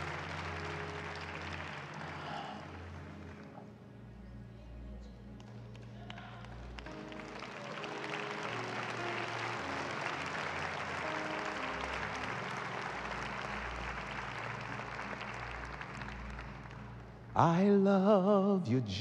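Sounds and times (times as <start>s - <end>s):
congregation applauding: 0.0s - 3.8s, 5.4s - 17.8s
soft church music: 0.0s - 19.0s.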